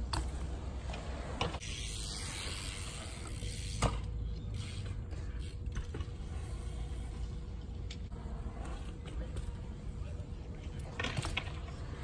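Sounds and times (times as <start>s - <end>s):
bike freewheel ticking: 1.6s - 7.2s.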